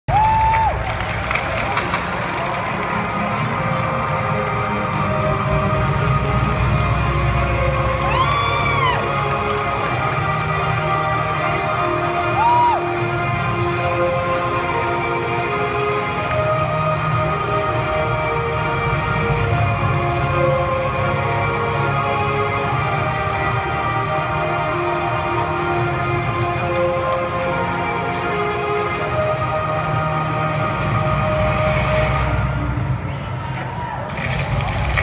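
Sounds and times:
arena crowd noise: 0.0s - 19.3s, 32.2s - 35.0s
music over sound system: 0.1s - 35.0s.

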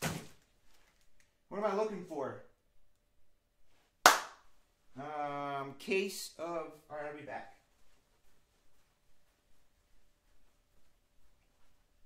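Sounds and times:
sharp smack: 4.0s - 4.4s.

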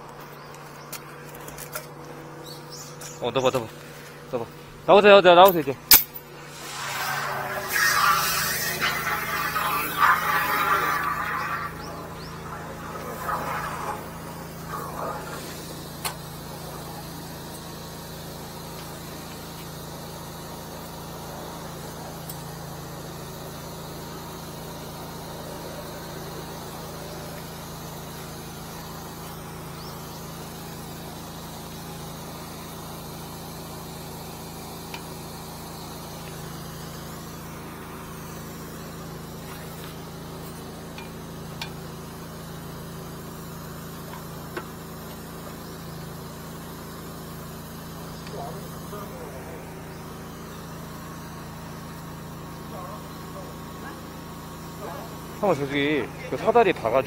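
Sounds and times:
engine idling: 6.2s - 56.9s.

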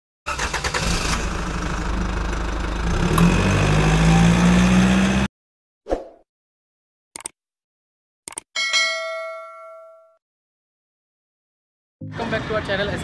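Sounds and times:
car engine starting and revving: 0.3s - 5.3s
short ding: 8.6s - 10.2s.

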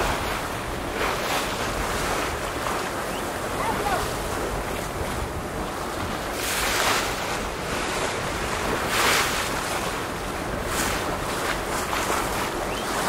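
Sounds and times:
waves washing and splashing: 0.0s - 13.0s
wind buffeting microphone: 0.0s - 13.0s.

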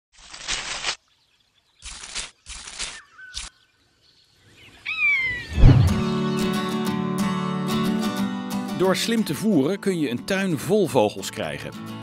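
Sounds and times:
loud low thump: 5.5s - 6.1s
short noise swishes: 5.5s - 6.1s.

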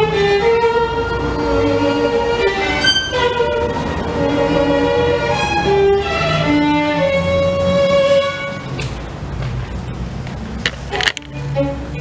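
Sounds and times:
solo violin bowed notes: 0.0s - 8.8s, 10.8s - 12.0s.

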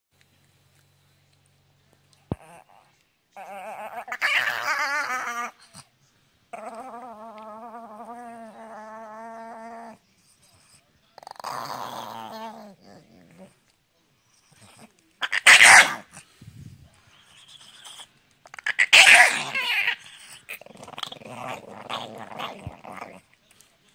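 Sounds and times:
dog growling: 2.3s - 5.9s, 6.5s - 13.7s, 14.3s - 16.3s, 17.4s - 23.4s
dog snarling: 2.3s - 5.9s, 6.5s - 10.0s, 10.6s - 13.6s, 14.4s - 16.3s, 17.4s - 23.4s.

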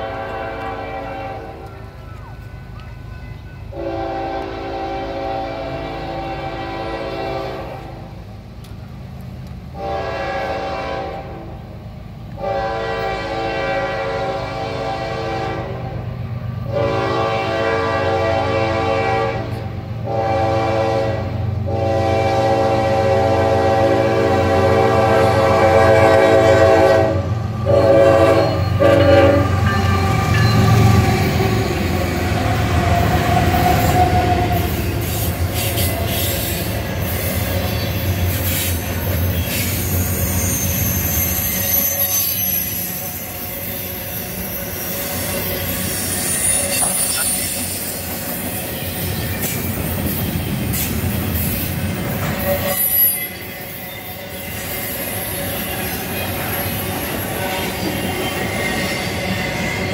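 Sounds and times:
locomotive air horn blasts: 0.0s - 1.7s, 3.7s - 8.1s, 9.7s - 11.6s, 12.3s - 16.1s, 16.7s - 31.7s, 33.0s - 37.3s, 51.6s - 55.7s
diesel locomotives passing: 0.0s - 59.9s
train cars rattling over rails: 0.0s - 59.9s
faint wheel squeal: 33.6s - 49.4s, 50.0s - 59.9s.

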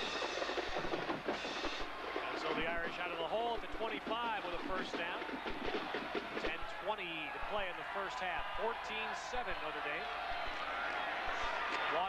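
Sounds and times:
drum strokes: 0.0s - 7.8s.

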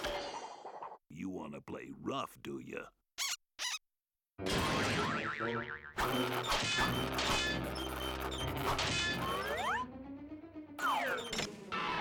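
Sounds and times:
orchestral cartoon music: 6.0s - 12.0s.

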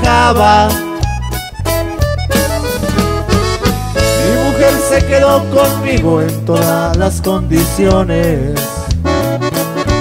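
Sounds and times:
accordion melody: 0.0s - 10.0s
steady bass line: 0.0s - 10.0s.

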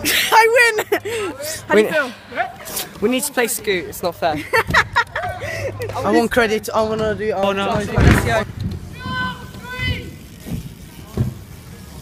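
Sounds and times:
bike tyres rumbling on concrete: 2.4s - 12.0s
bike landing thumps: 6.7s - 11.6s.

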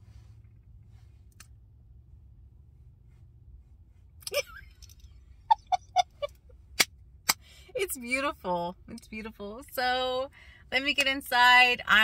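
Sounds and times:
woman's soft chuckle: 5.5s - 6.3s.

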